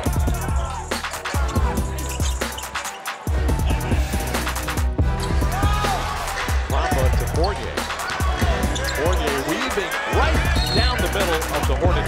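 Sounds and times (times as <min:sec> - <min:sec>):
background music with beat: 0:00.0 - 0:12.0
sneaker squeaks: 0:02.0 - 0:03.2, 0:07.4 - 0:09.4.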